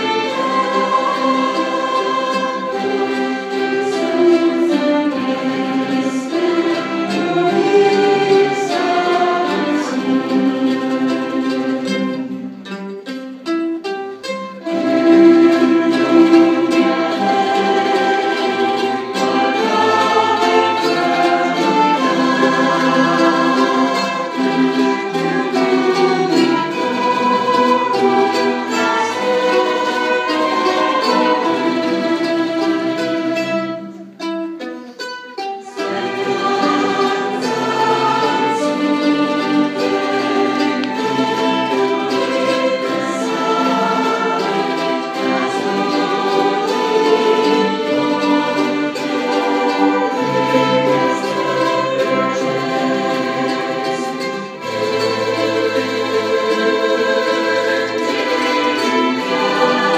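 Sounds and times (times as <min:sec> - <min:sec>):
people singing: 0:00.0 - 0:12.5, 0:14.6 - 0:34.0, 0:35.6 - 0:59.9
string and mandolin ensemble: 0:00.0 - 0:59.9.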